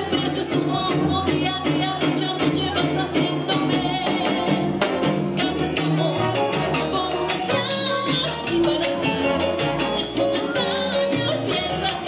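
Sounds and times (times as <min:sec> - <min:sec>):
live salsa band: 0:00.0 - 0:12.0.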